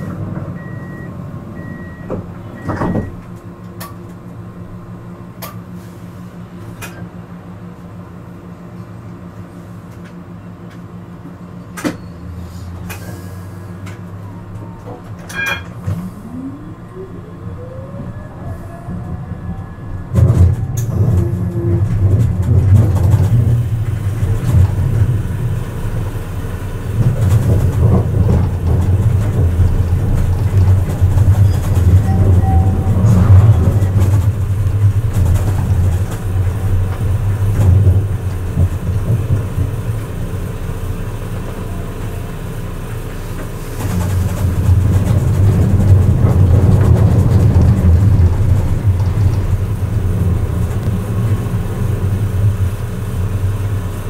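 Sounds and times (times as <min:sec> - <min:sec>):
tram wheels rumbling on rails: 0:00.0 - 0:54.0.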